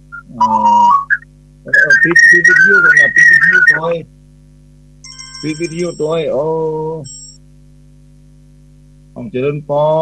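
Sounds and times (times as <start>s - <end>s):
low steady hum: 0.0s - 10.0s
wavering feedback whistle: 0.1s - 3.9s
person talking on phone line: 0.2s - 4.1s, 5.4s - 7.1s.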